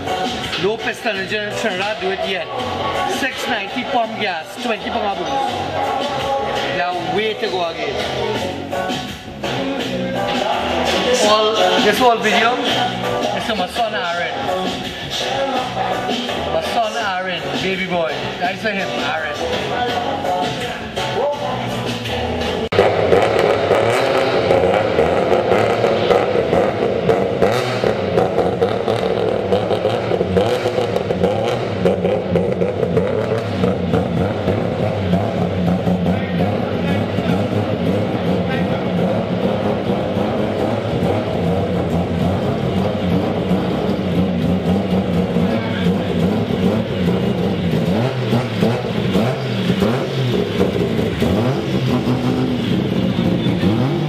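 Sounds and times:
people talking: 0:00.5 - 0:08.5, 0:10.2 - 0:14.6, 0:16.4 - 0:21.9, 0:35.8 - 0:41.1, 0:45.3 - 0:46.6
choppy engine running: 0:22.1 - 0:54.0.

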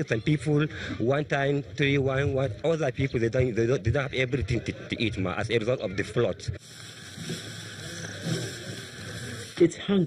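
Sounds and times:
faint voices: 0:00.0 - 0:10.0
outdoor ambient hiss: 0:06.6 - 0:10.0.

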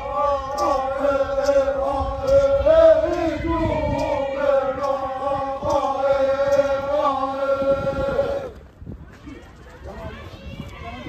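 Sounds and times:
men chanting in unison: 0:00.0 - 0:08.6.

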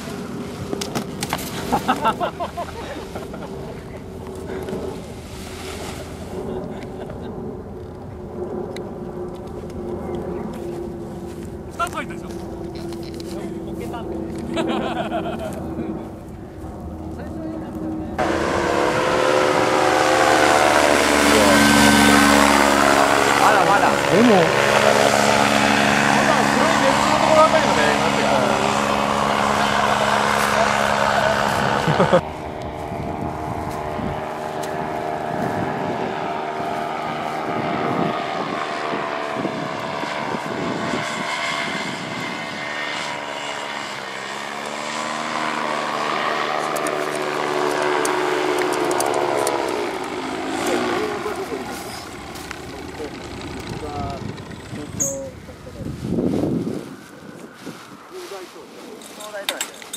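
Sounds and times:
paramotor engine buzzing: 0:02.9 - 0:58.2.

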